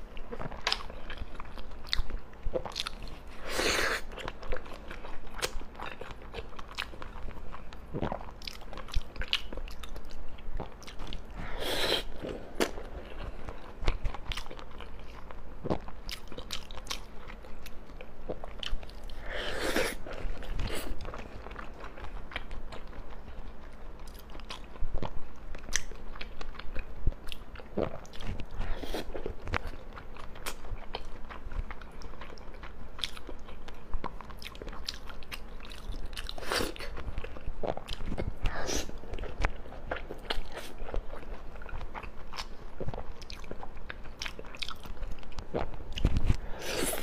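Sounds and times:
person chewing: 0.1s - 47.0s.

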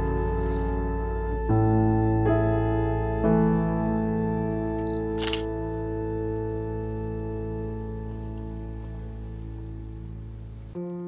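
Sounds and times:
held keyboard chords: 0.0s - 11.0s
camera shutter click: 4.8s - 5.5s.

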